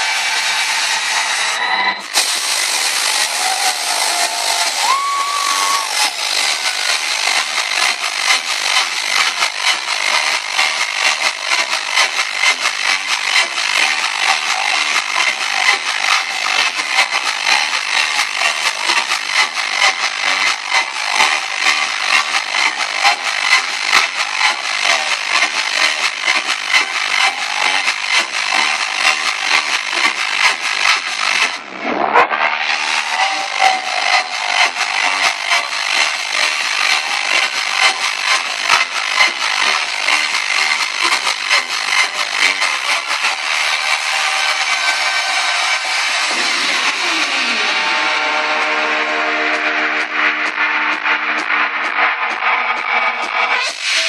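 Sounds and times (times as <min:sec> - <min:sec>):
distorted trance music: 0:00.0 - 0:54.0.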